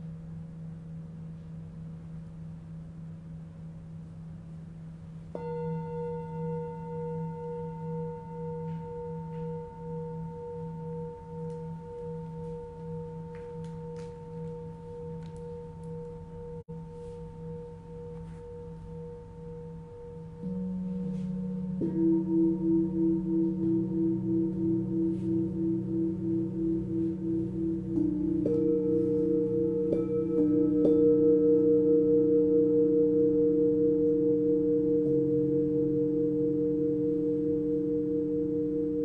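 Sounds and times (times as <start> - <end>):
singing bowl low hum: 0.0 - 39.0
singing bowl struck ringing: 5.3 - 39.0.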